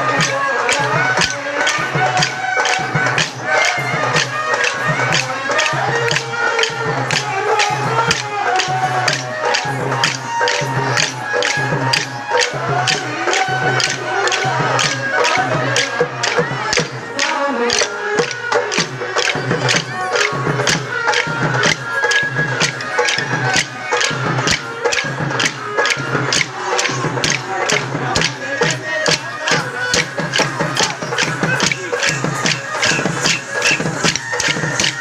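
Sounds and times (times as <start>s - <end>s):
melodic accompanying music: 0.0s - 35.0s
wooden sticks clacking together: 0.1s - 35.0s.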